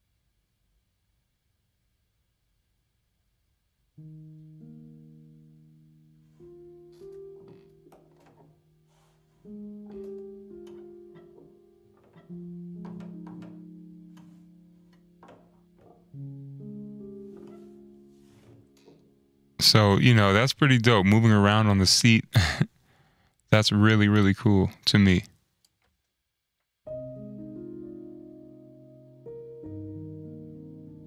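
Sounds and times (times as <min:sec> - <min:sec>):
soft piano chords: 0:04.0 - 0:20.2, 0:26.9 - 0:31.0
seat creaks and clicks: 0:07.0 - 0:16.2, 0:17.2 - 0:19.1.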